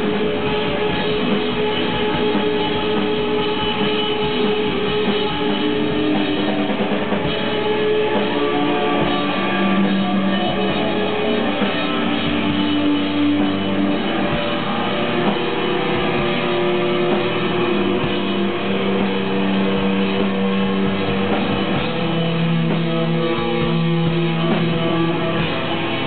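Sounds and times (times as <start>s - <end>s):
distorted electric guitar: 0.0s - 26.0s
drums: 0.0s - 26.0s
rock band playing live: 0.0s - 26.0s.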